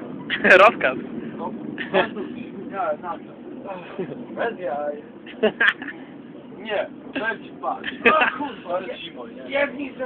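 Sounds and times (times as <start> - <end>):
men talking and shouting: 0.0 - 10.0
steady low rumble: 0.0 - 10.0.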